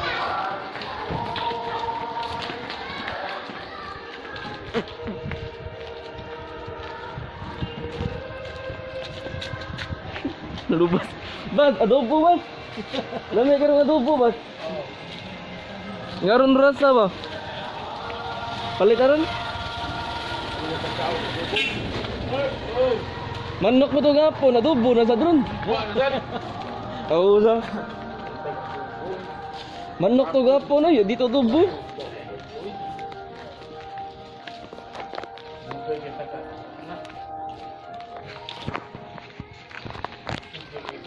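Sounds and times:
footsteps on concrete: 0:00.0 - 0:18.3, 0:24.6 - 0:41.0
voices talking: 0:10.2 - 0:39.1.

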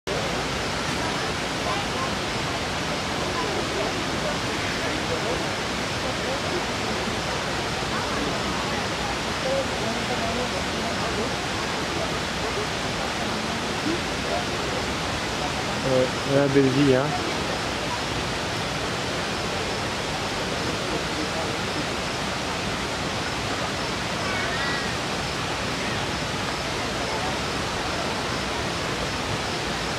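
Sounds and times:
faint distant voices: 0:00.1 - 0:29.9
running water rushing: 0:00.1 - 0:29.9.

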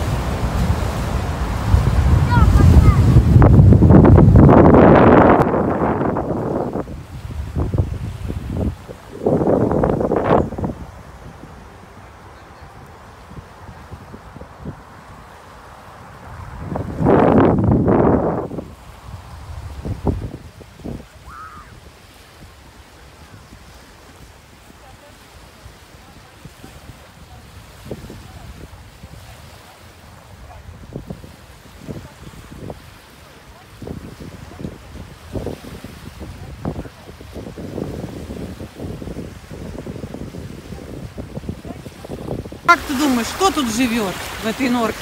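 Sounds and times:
small waves on the shore: 0:00.0 - 0:45.0
steady hiss of wind: 0:00.0 - 0:45.0
wind gusting across microphone: 0:00.0 - 0:45.0.

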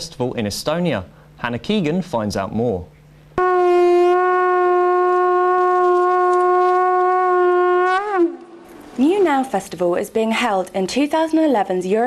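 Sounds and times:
long horn note: 0:03.4 - 0:08.7.

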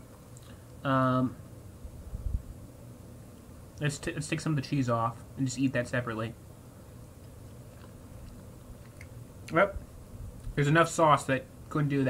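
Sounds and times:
faint chewing: 0:00.1 - 0:00.8, 0:07.0 - 0:09.6.

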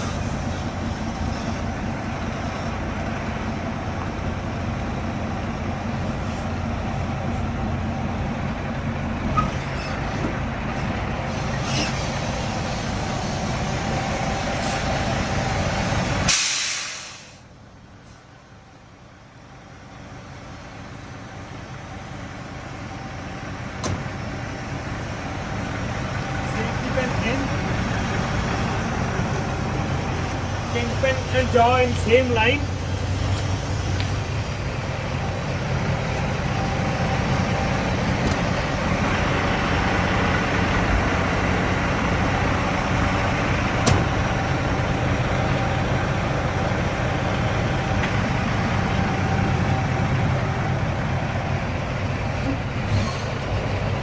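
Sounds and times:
diesel truck idling: 0:00.0 - 0:54.0
air brakes hissing: 0:10.8 - 0:13.6, 0:14.4 - 0:15.1, 0:16.2 - 0:18.3, 0:52.4 - 0:53.6.

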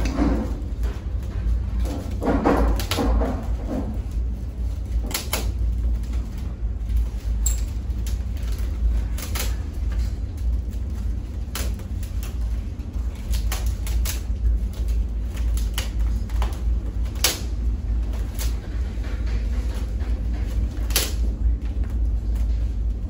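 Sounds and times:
chair frame creaking and cracking: 0:00.0 - 0:23.0
steady low rumble: 0:00.0 - 0:23.0.

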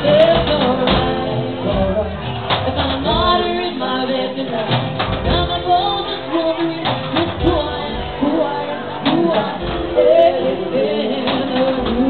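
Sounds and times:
drums keeping the beat: 0:00.0 - 0:12.0
piano: 0:00.0 - 0:12.0
voices singing: 0:00.0 - 0:12.0.

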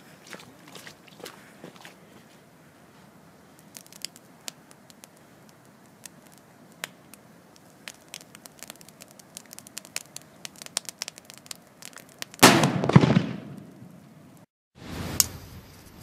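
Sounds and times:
firecracker bang: 0:12.4 - 0:14.0.

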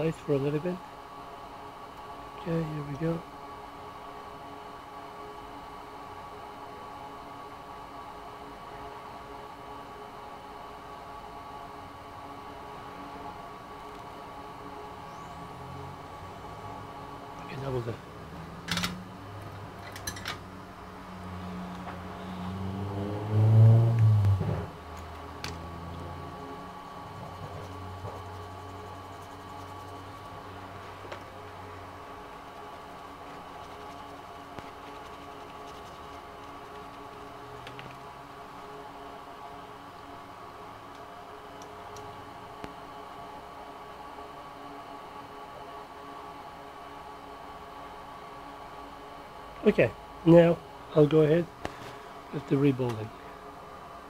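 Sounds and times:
electrical hum: 0:00.0 - 0:54.0.

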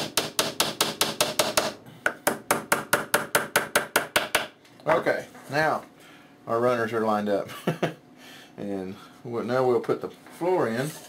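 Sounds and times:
hammer tapping nails into wood: 0:00.0 - 0:04.5.

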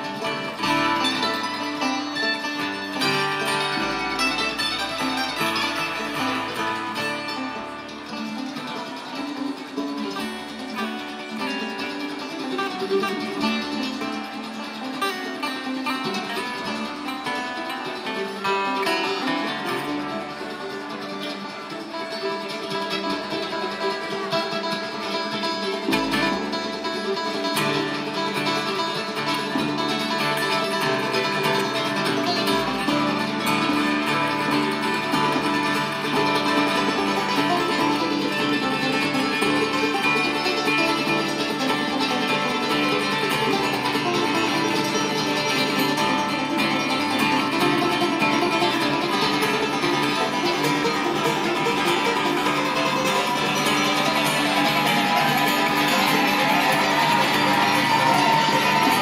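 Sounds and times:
acoustic guitar: 0:00.0 - 0:59.0
banjo: 0:00.0 - 0:59.0
mandolin: 0:00.0 - 0:59.0.

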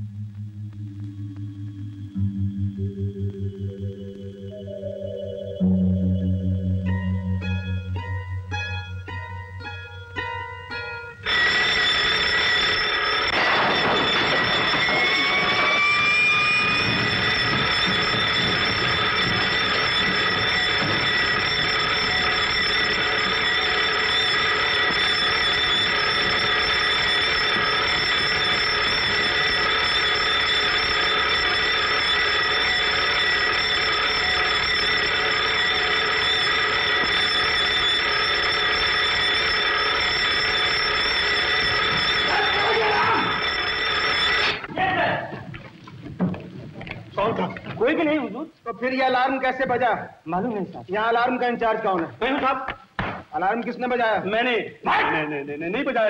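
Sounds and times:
rising whine: 0:00.0 - 0:48.0
electric alarm bell ringing: 0:01.2 - 0:45.3, 0:51.0 - 0:52.0.

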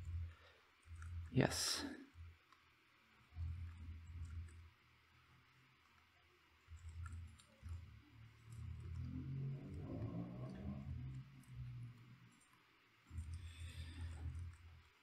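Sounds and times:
computer mouse clicks: 0:00.0 - 0:15.0.

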